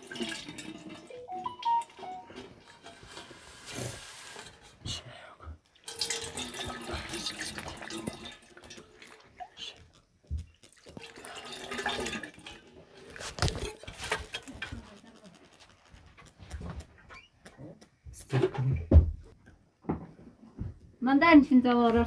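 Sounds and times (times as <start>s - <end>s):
water pouring into metal basin: 0.0s - 4.7s, 5.8s - 9.9s, 10.6s - 15.0s.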